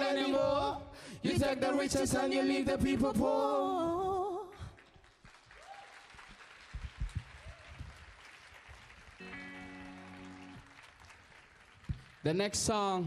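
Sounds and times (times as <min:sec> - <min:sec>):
audience applause: 0:04.8 - 0:12.4.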